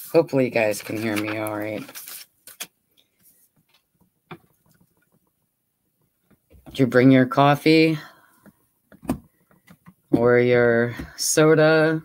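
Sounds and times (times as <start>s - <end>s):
paper rustling: 0.0s - 3.8s.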